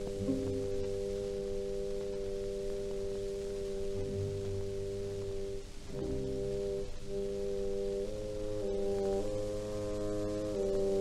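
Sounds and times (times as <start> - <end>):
orchestra holding sustained chord: 0.0 - 11.0
record surface hiss: 0.0 - 11.0.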